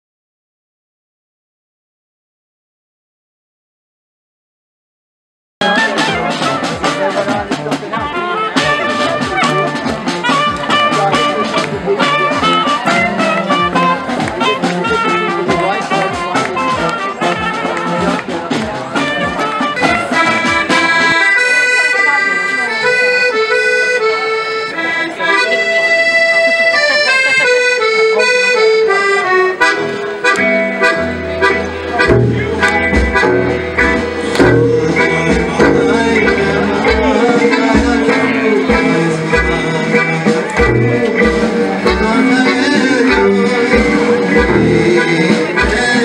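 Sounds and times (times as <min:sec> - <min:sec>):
drums playing a steady beat: 0:05.6 - 0:21.3, 0:29.5 - 0:46.0
accordion melody: 0:05.6 - 0:46.0
double bass: 0:05.6 - 0:46.0.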